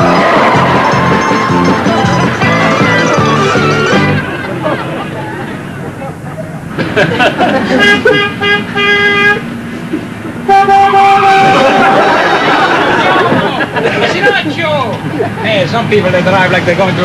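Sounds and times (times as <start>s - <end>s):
car horns honking: 0.0s - 4.7s, 7.4s - 9.7s, 10.4s - 13.7s.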